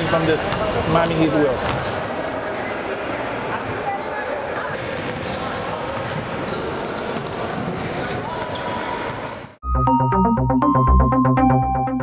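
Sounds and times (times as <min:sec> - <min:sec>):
basketball bouncing on court: 0:04.8 - 0:09.2.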